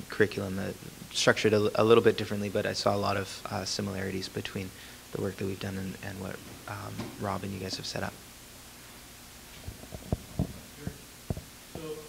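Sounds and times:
microphone handling thumps: 9.5s - 11.9s.

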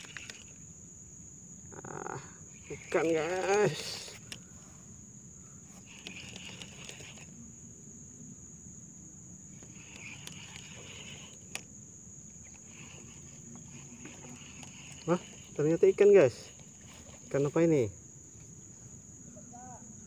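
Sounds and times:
insect buzzing bursts: 0.0s - 20.0s
insects whining: 0.0s - 20.0s.

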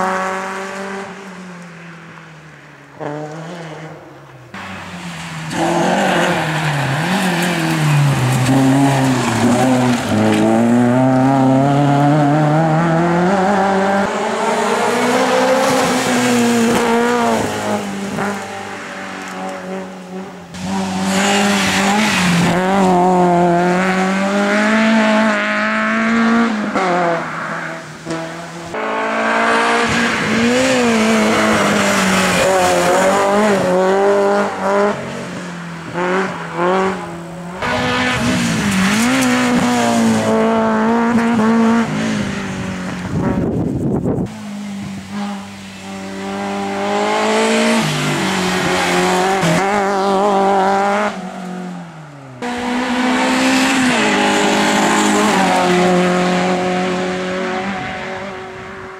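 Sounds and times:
racing car engine at high revs: 0.0s - 1.4s, 2.9s - 58.9s.

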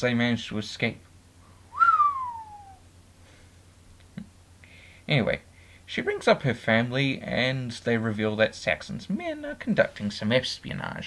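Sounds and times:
whistle gliding down in pitch: 1.7s - 2.8s.

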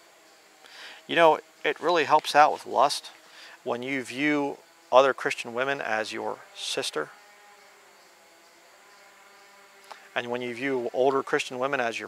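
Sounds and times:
flying insect buzzing: 0.0s - 12.0s.

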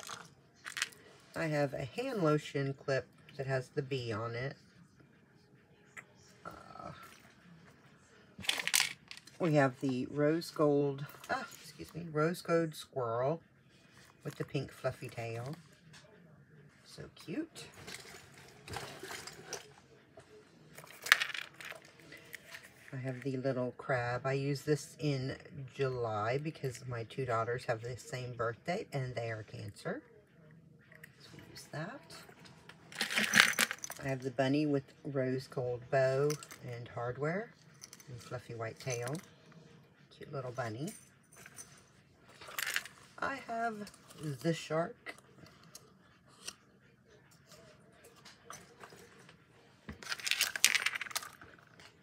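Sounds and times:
metal and plastic clips clinking: 32.9s - 34.0s.

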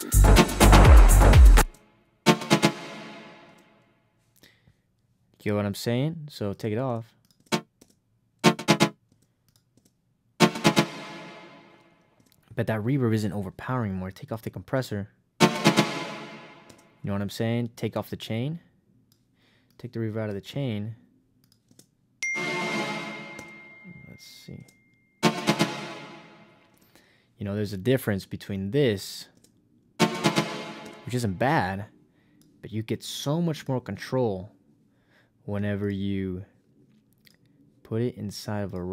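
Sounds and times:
techno chord stab with reverb: 2.3s - 3.6s, 8.4s - 8.9s, 10.4s - 11.8s, 15.4s - 16.7s, 22.4s - 23.8s, 25.2s - 26.6s, 30.0s - 31.1s
synth stab with reverb: 15.4s - 16.6s.

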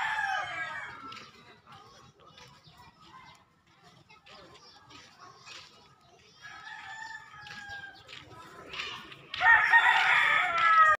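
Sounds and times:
roosters crowing: 0.0s - 1.2s, 6.4s - 8.1s, 9.4s - 11.0s.

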